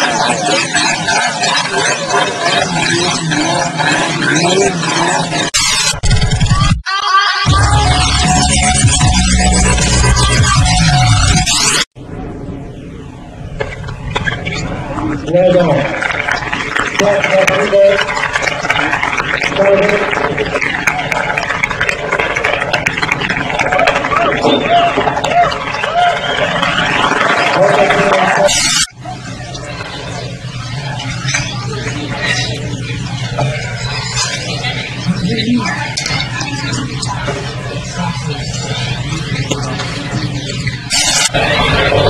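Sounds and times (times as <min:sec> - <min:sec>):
wheels spinning in loose sand: 0:00.0 - 0:05.4, 0:14.4 - 0:28.5
crowd laughing and cheering: 0:00.0 - 0:05.5, 0:14.1 - 0:42.0.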